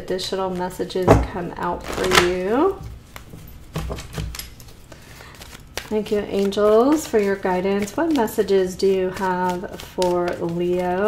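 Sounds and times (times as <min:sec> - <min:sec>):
cards being shuffled: 0:01.6 - 0:11.0.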